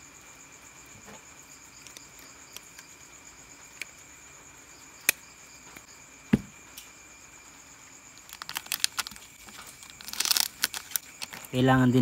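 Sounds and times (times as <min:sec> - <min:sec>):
small parts rattling and ticking: 0:08.2 - 0:11.6.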